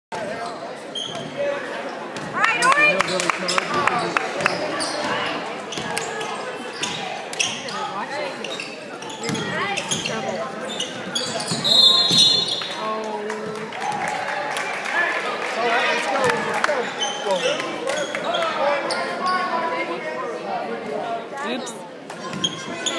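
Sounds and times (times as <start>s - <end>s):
ball bouncing on wooden court: 9.2s - 10.1s
referee's whistle: 11.3s - 12.7s.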